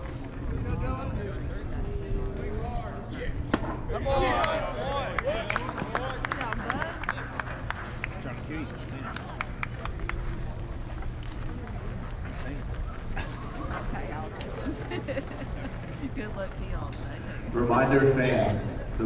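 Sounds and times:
spectators chattering: 0:00.0 - 0:19.0
scattered handclaps: 0:04.4 - 0:10.4.

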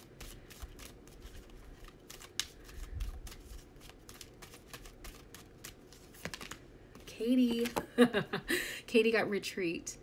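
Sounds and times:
cards being shuffled: 0:00.1 - 0:07.9.

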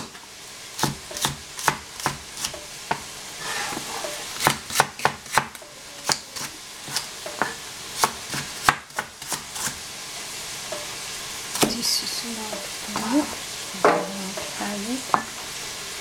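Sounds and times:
cleaver chopping on cutting board: 0:04.4 - 0:09.8.

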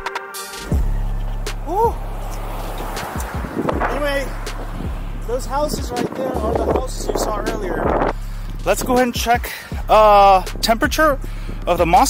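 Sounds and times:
background music: 0:00.0 - 0:12.0
electric skateboard rolling on asphalt: 0:00.8 - 0:05.2.

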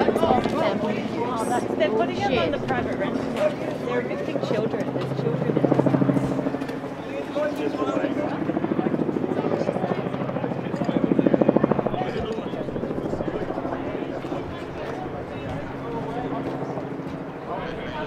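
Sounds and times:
helicopter rotor chopping: 0:00.0 - 0:18.0.

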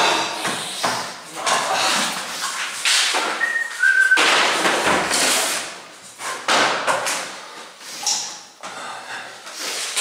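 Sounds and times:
high whistle-like tones: 0:03.4 - 0:04.3.

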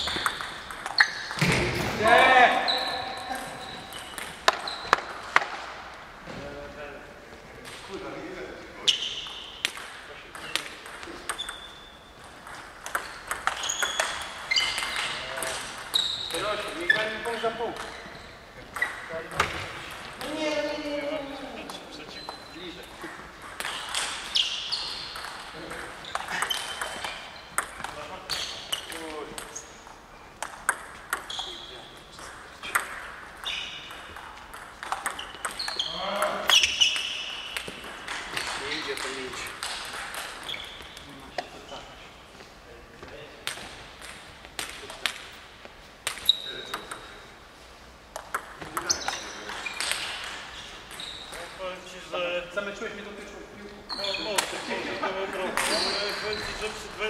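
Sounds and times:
table tennis balls clicking: 0:00.0 - 0:01.6, 0:03.2 - 0:05.6, 0:09.0 - 0:18.1, 0:21.7 - 0:41.6, 0:43.4 - 0:45.4, 0:46.0 - 0:47.3, 0:48.1 - 0:51.6
table tennis ball click: 0:48.1 - 0:48.9.

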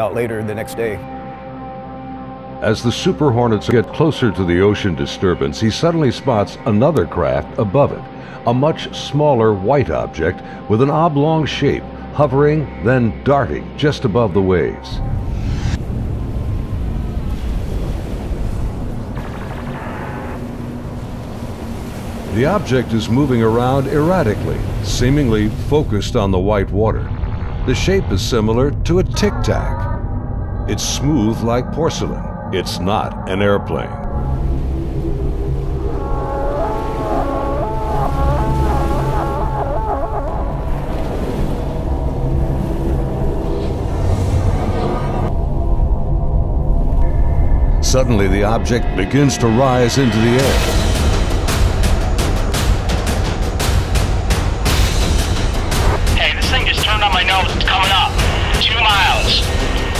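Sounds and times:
sea rumble and wash: 0:02.6 - 0:59.9
low held drone: 0:26.9 - 0:52.8
wavering warbling tones: 0:29.2 - 0:41.0.

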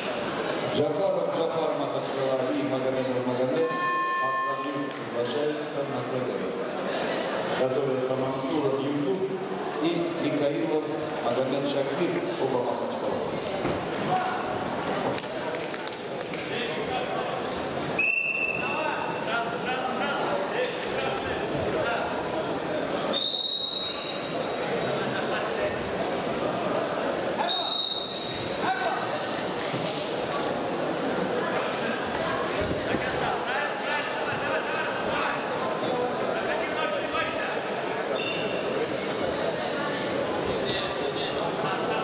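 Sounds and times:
crowd talking and calling out: 0:00.0 - 0:42.0
referee's whistle blasts: 0:18.0 - 0:18.7, 0:23.1 - 0:24.3, 0:27.4 - 0:28.3.

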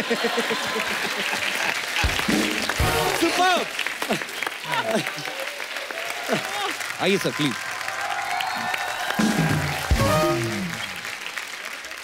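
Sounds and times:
audience applauding and cheering: 0:00.0 - 0:12.0
music playing: 0:02.0 - 0:03.8, 0:09.2 - 0:11.1.

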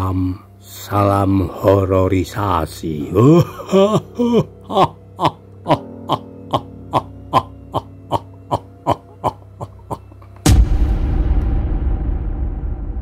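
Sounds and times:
sinister laugh: 0:03.1 - 0:10.4
loud rumbling boom: 0:10.4 - 0:13.0.

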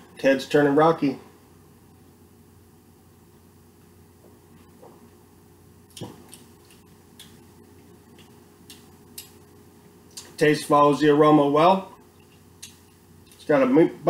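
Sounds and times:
faint steady hum: 0:00.0 - 0:14.0.

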